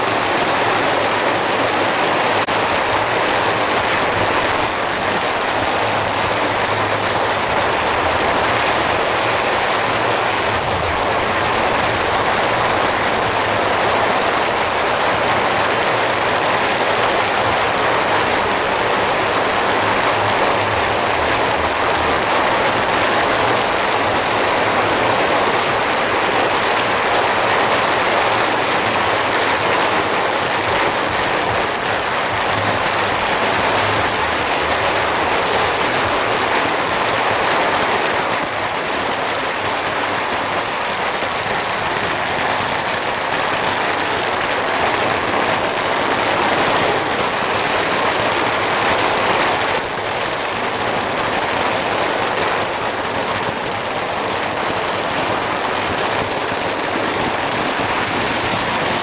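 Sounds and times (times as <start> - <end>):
firecrackers crackling: 0.0 - 59.0.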